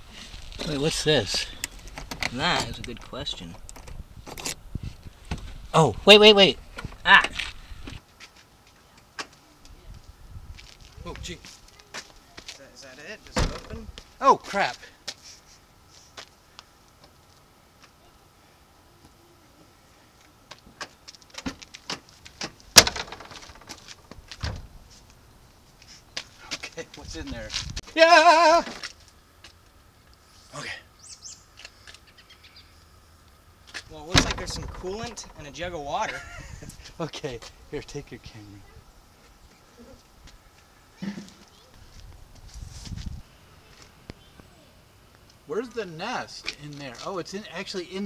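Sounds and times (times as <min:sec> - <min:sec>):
man yelling in fright: 0:27.9 - 0:28.8
small bird chirping: 0:31.0 - 0:33.0.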